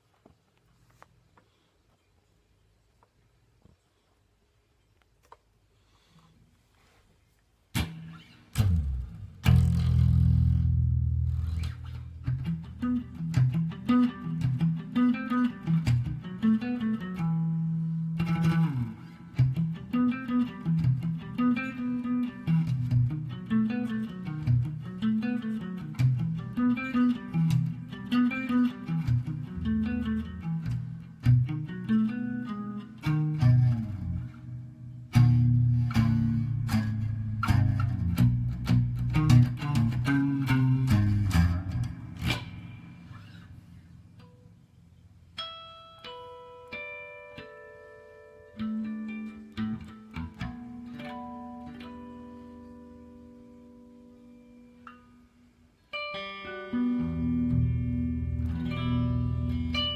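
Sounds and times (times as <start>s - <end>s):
electric guitar riff: 7.7s - 44.6s, 45.4s - 55.3s, 55.9s - 59.9s.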